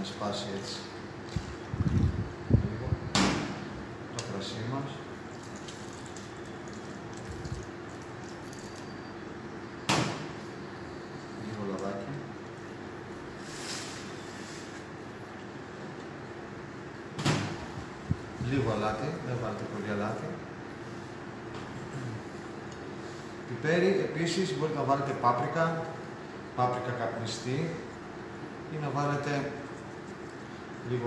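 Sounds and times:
steady low hum: 0.0 - 31.0.

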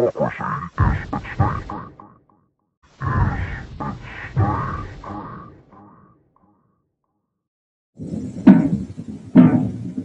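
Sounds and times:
processed man's voice: 0.0 - 2.0, 3.1 - 5.6.

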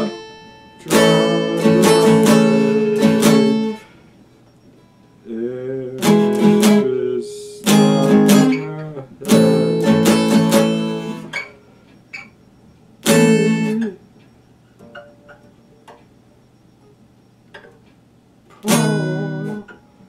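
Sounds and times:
acoustic guitar chords: 0.0 - 12.3, 13.0 - 14.1, 18.5 - 20.0
soft guitar plucks: 18.6 - 19.9.

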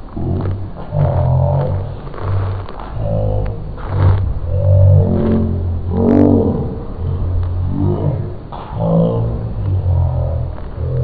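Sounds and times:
boy growling: 0.2 - 11.0.

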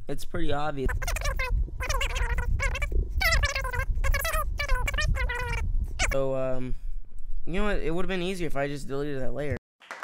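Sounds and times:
steady low rumble: 0.6 - 8.2
high-pitched rapid chattering voice: 0.8 - 6.2.

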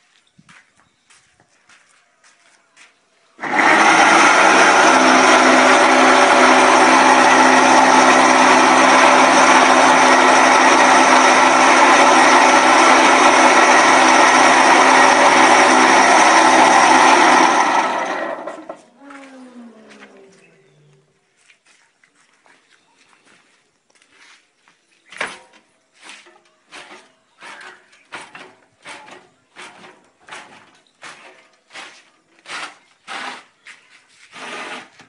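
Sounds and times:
electric motor running: 3.4 - 18.8.

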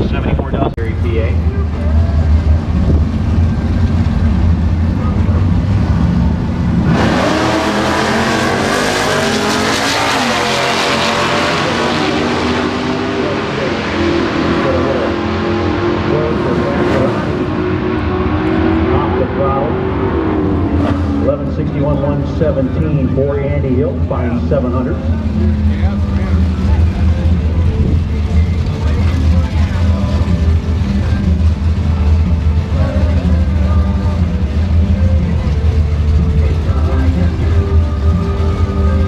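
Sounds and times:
drag cars rumbling and launching: 0.0 - 39.0.

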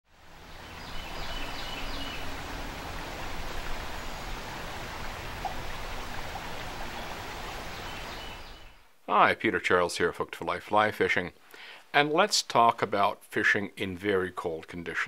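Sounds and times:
river water rushing: 0.1 - 8.8.

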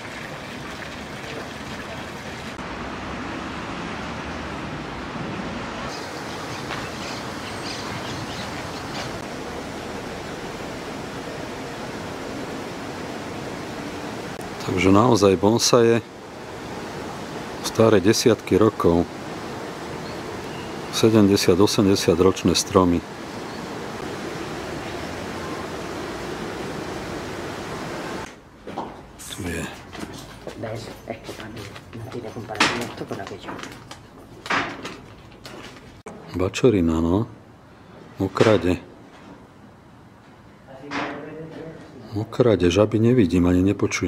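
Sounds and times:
outdoor background rush: 0.0 - 44.0.

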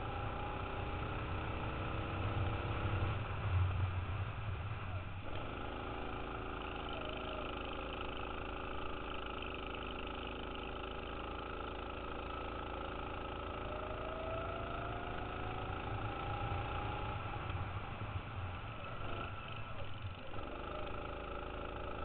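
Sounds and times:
go-kart engine: 0.0 - 22.0.

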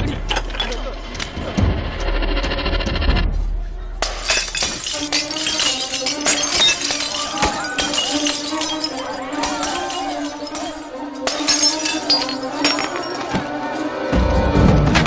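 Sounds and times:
glass bottles smashing: 4.0 - 13.5
film background music: 9.0 - 15.0.

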